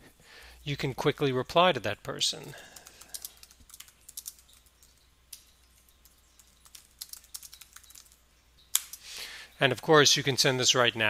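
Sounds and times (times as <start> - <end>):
typing on computer keyboard: 2.4 - 8.2.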